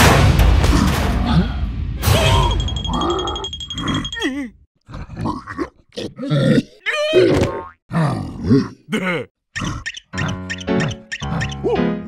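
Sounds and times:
held high tone: 2.2s - 4.4s
wobbly quavering cry: 2.9s - 11.7s
cartoon character grunts: 5.6s - 9.3s
music: 10.1s - 12.0s.

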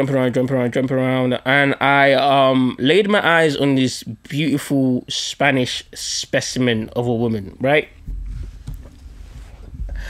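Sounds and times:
microphone handling rumble: 7.9s - 10.0s.

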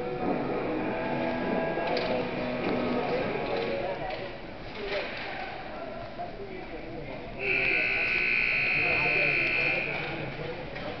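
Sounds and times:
scoreboard buzzer blast: 7.4s - 10.0s.

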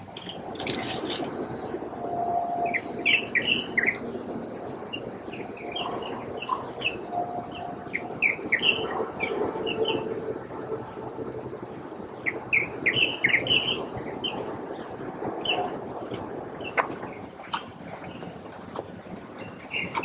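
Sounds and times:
birds chirping: 0.0s - 20.0s.

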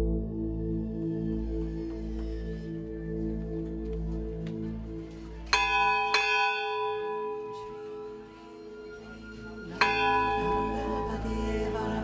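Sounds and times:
large metal bell ringing: 5.5s - 8.9s, 9.6s - 11.8s.

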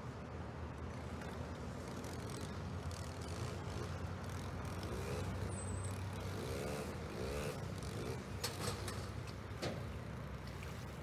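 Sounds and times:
low rumble of distant vehicles: 0.0s - 11.0s.

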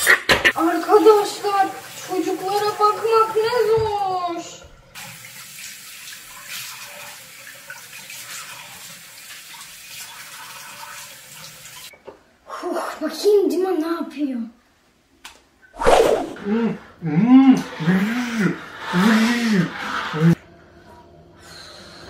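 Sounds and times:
girl's voice: 0.6s - 4.6s, 12.6s - 14.6s.

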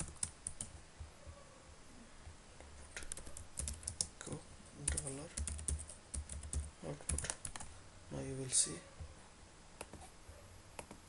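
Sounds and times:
typing on computer keyboard: 0.0s - 0.8s, 2.9s - 4.1s, 4.8s - 7.7s.

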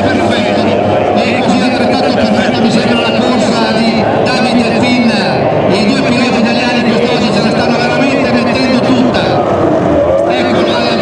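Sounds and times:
racing powerboat engines droning: 0.0s - 11.0s.

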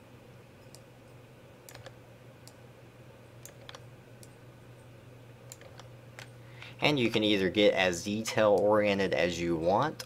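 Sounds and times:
steady low hum: 0.0s - 10.0s
computer mouse and keyboard clicks: 1.7s - 2.6s, 3.4s - 4.4s, 5.5s - 6.3s.

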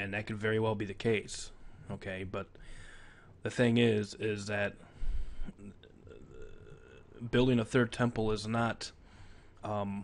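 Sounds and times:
man speaking: 0.0s - 2.6s, 3.4s - 9.0s, 9.6s - 10.0s
man's low throat sound: 5.4s - 7.2s
faint vocal murmuring: 5.6s - 7.3s.

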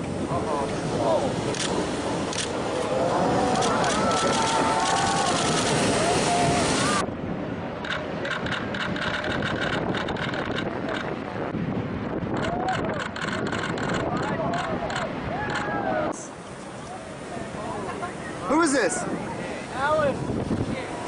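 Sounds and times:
wind rushing: 0.0s - 16.4s, 18.5s - 21.0s
surf breaking: 0.0s - 21.0s
people shouting excitedly: 2.8s - 7.0s.

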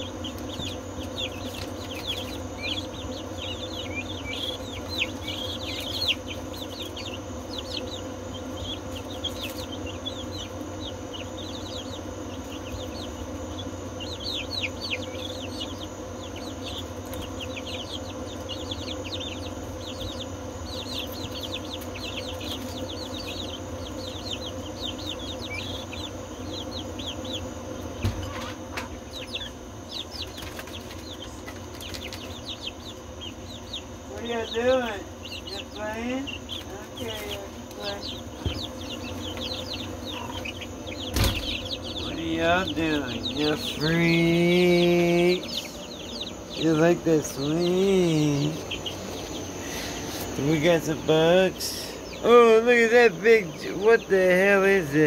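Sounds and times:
steady low hum: 0.0s - 55.0s
young chicks peeping: 0.0s - 55.0s.

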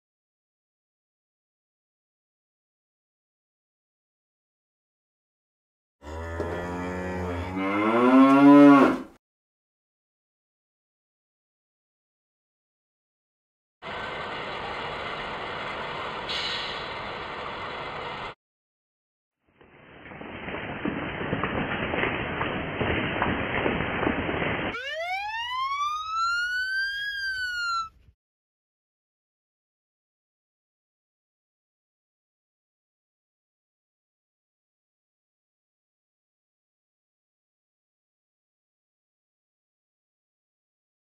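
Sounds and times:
cow mooing: 6.0s - 9.1s
fire engine siren wailing: 24.7s - 28.0s.

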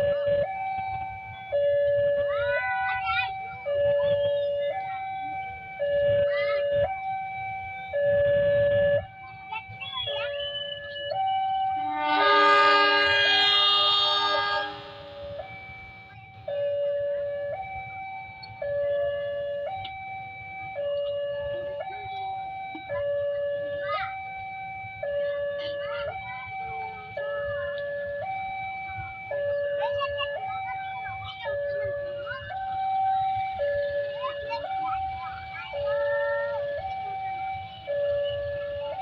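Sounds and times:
level crossing two-tone alarm: 0.0s - 39.0s
train horn: 11.8s - 15.4s.

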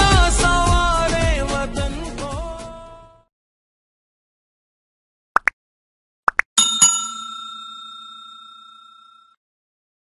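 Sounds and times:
notification bell ding: 6.6s - 9.4s.

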